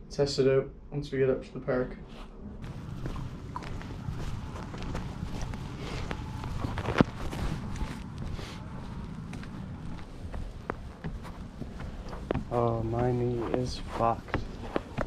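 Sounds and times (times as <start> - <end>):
low rumble of clothing noise: 0.0 - 15.0
footsteps on concrete: 2.6 - 15.0.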